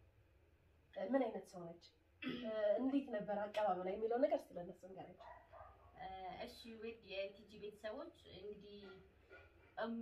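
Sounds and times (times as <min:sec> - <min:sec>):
women talking: 0:01.0 - 0:05.4, 0:06.0 - 0:09.1, 0:09.8 - 0:10.0.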